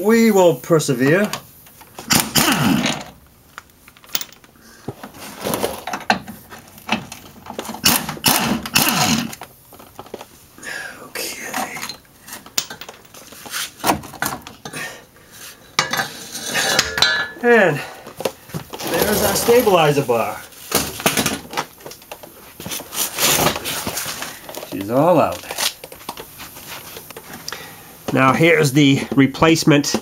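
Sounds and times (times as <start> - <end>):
pneumatic impact wrench: 2.0 - 3.1, 7.8 - 9.4
metal clanking: 15.8 - 17.5.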